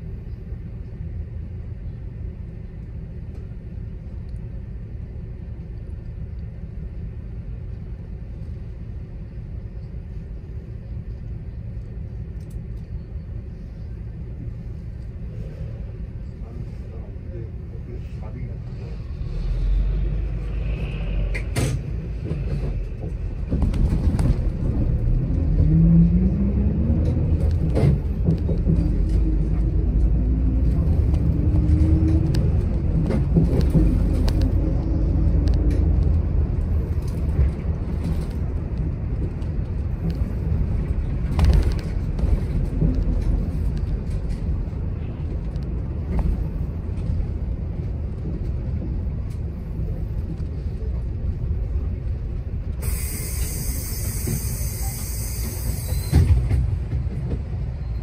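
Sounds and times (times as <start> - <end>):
bus engine and road rumble: 0.0 - 58.0
rising engine whine: 18.9 - 41.1.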